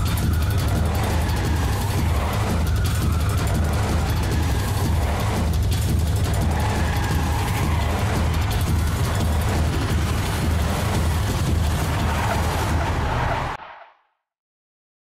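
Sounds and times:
background music: 0.0s - 13.6s.

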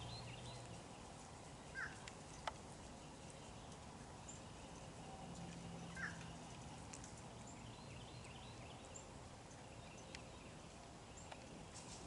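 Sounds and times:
faint bird chirps: 0.0s - 6.5s.

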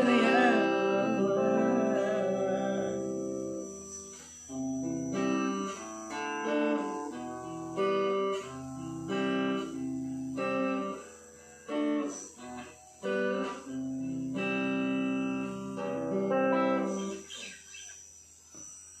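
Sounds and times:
electric guitar chords ringing: 0.0s - 18.8s.

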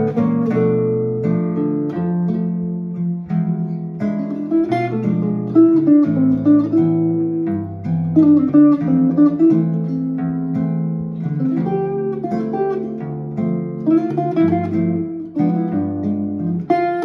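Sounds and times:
jazz guitar duet: 0.0s - 17.0s.

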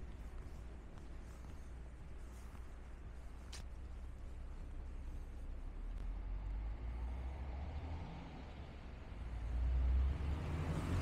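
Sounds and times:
car passing: 6.0s - 11.0s.

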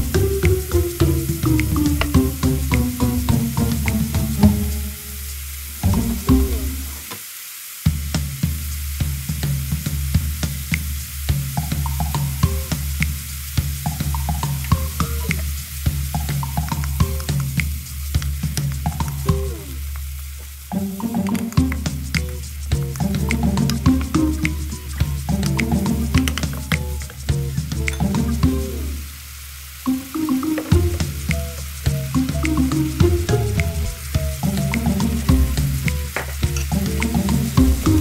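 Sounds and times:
background music: 0.0s - 7.1s, 20.7s - 29.2s, 29.9s - 38.0s
vegetables sizzling in a wok: 0.0s - 38.0s.

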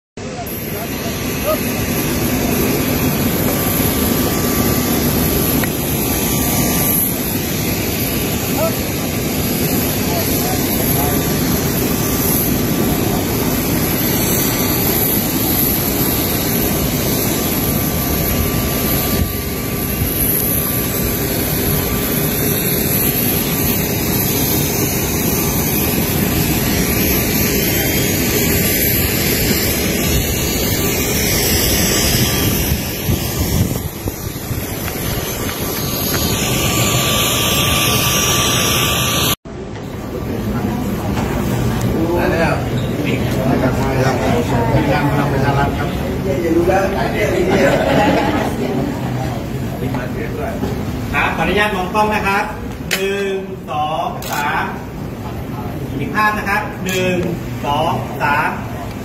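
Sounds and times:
aircraft turbine engine running: 0.2s - 59.0s.

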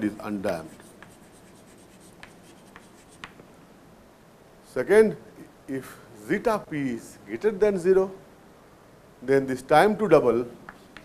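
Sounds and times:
chalk tapping and scratching: 0.3s - 3.4s, 10.7s - 11.0s.

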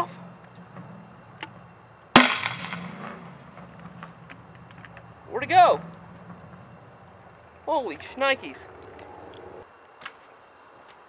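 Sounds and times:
gas grenade shell bang: 2.2s - 2.9s.

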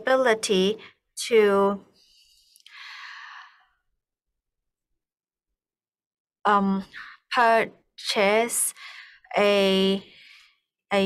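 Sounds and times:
person breathing in: 2.1s - 3.7s.

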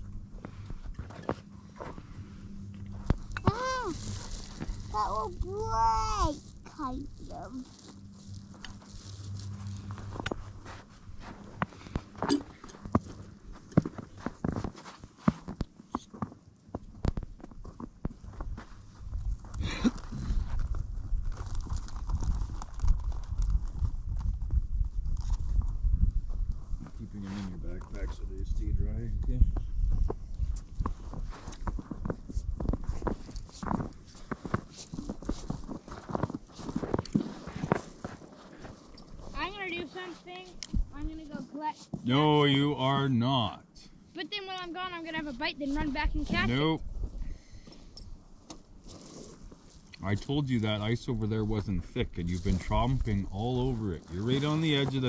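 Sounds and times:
footsteps crunching on snow: 0.4s - 24.6s, 30.0s - 42.2s, 51.7s - 55.0s
wind rumble on microphone: 18.0s - 37.8s, 45.8s - 48.1s.

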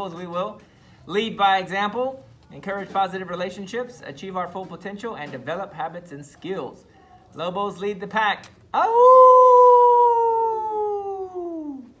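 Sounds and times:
man howling like a wolf: 8.8s - 12.0s.

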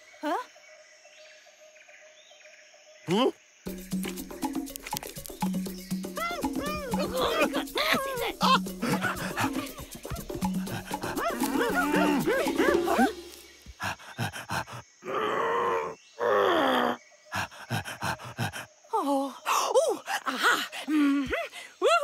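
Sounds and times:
light music: 3.7s - 13.5s
cartoon character chatter: 6.2s - 13.1s.

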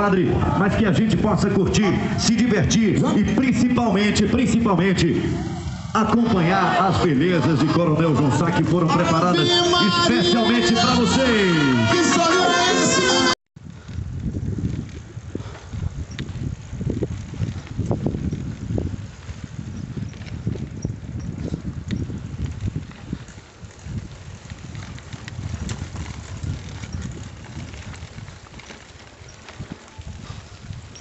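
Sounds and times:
bicycle rolling over bumpy dirt: 0.0s - 11.0s, 13.2s - 31.0s.

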